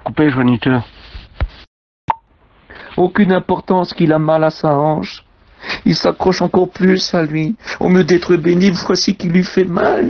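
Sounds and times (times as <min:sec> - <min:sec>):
speech: 0:00.0 - 0:00.9, 0:02.9 - 0:10.0.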